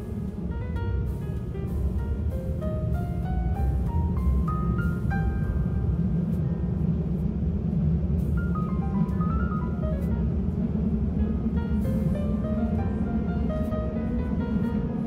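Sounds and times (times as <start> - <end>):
piano-like music: 0.0 - 15.0
train rumble: 0.0 - 15.0.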